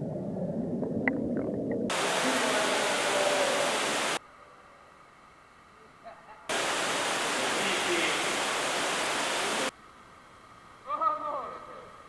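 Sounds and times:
rushing water in spa pool: 0:01.9 - 0:04.2, 0:06.5 - 0:09.8.

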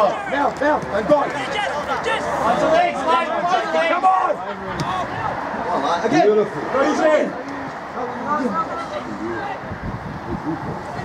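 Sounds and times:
men talking and shouting: 0:00.0 - 0:11.0.

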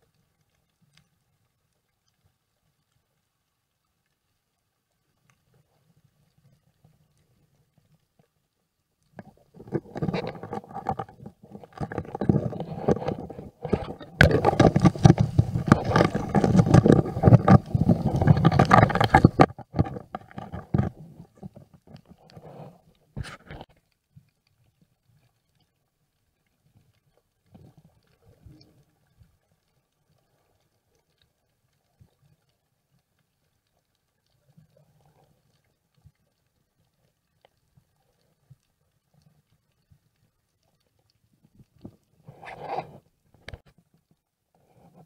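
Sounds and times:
muffled underwater rumble: 0:09.2 - 0:23.7
knocks and clicks: 0:11.8 - 0:21.0.

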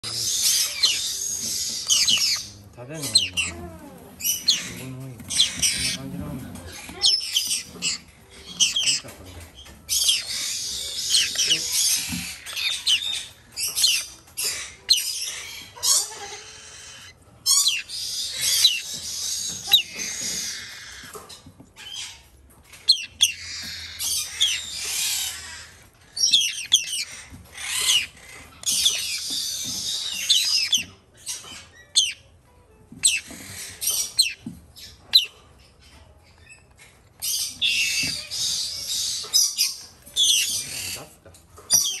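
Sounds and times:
parrot chicks calling: 0:00.0 - 0:42.0.

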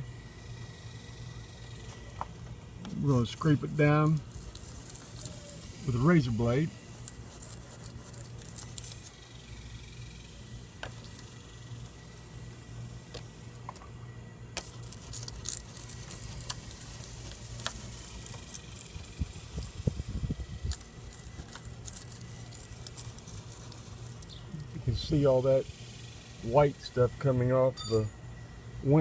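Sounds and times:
steady low hum: 0:00.0 - 0:29.0
razor scraper rasping on glass: 0:04.1 - 0:09.1, 0:14.6 - 0:18.7.

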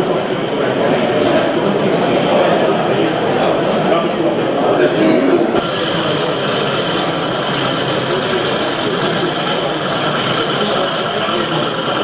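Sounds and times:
murmur of voices: 0:00.0 - 0:12.0
model locomotive running: 0:05.6 - 0:12.0.

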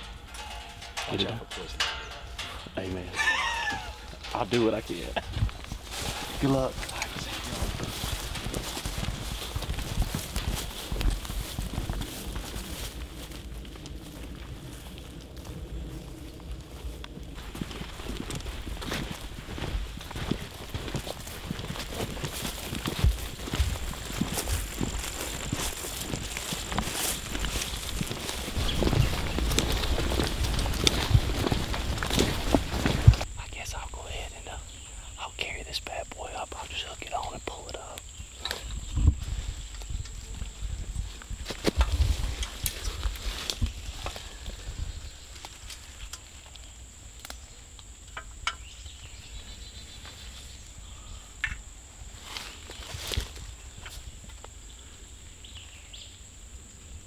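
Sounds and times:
footsteps in rubber boots on grass: 0:01.7 - 0:34.8, 0:36.3 - 0:46.6, 0:51.9 - 0:54.4.

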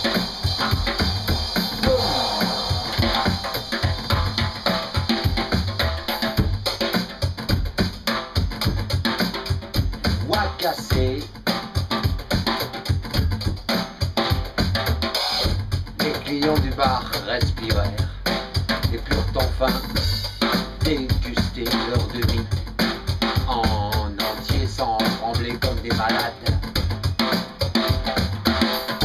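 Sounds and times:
fast drum and cymbal hits: 0:00.0 - 0:29.0.

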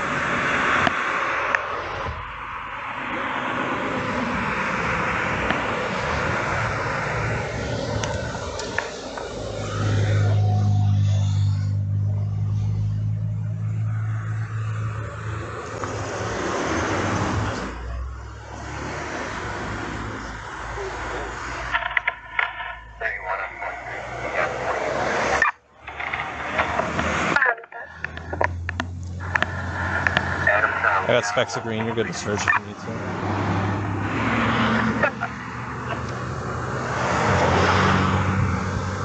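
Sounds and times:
steady engine hum: 0:00.0 - 0:39.0
vehicle passing: 0:00.0 - 0:39.0
muffled voices: 0:03.1 - 0:33.2, 0:34.0 - 0:37.8
clicks: 0:28.0 - 0:30.5.

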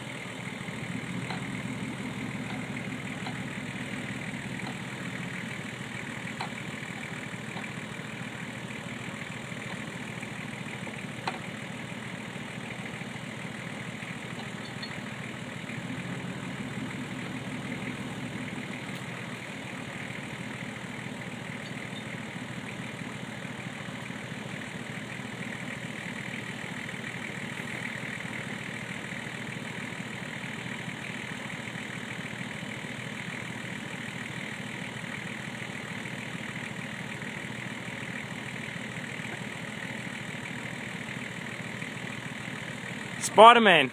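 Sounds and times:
engine idling: 0:00.0 - 0:43.9.

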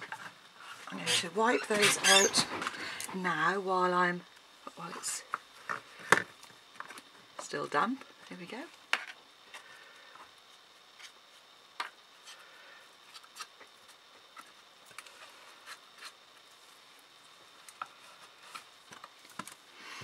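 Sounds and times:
quiet rubbing: 0:00.6 - 0:03.3.

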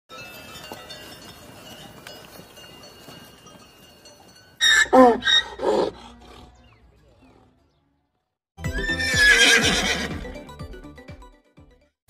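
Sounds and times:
faint outdoor background: 0:00.1 - 0:12.0
donkey braying: 0:04.0 - 0:10.4.

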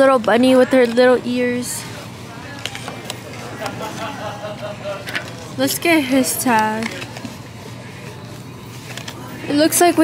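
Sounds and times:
store room hum: 0:00.0 - 0:10.0.

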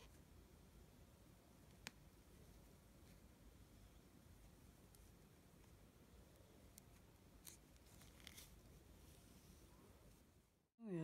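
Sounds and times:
faint rustles of yarn: 0:02.2 - 0:10.4.

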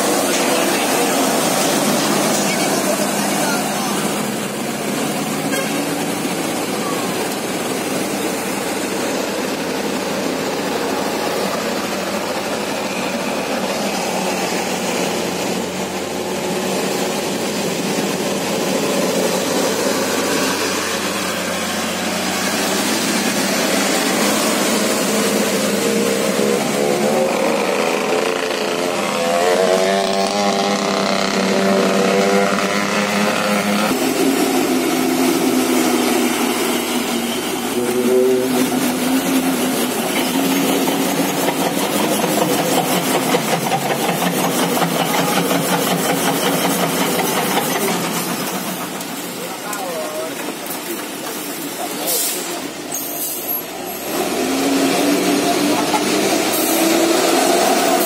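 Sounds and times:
hiss of wet road and rain: 0:00.0 - 0:30.2, 0:33.6 - 0:58.0
diesel truck engines labouring: 0:00.0 - 0:58.0.

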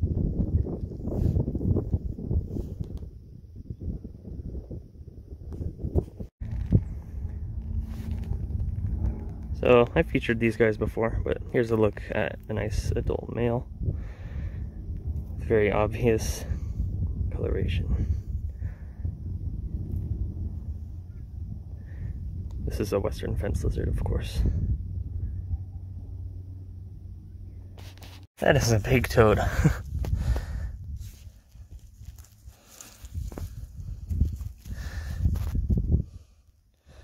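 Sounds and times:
wind buffeting microphone: 0:00.0 - 0:26.2, 0:28.9 - 0:37.0
rustling in dry leaf litter: 0:31.0 - 0:35.6.

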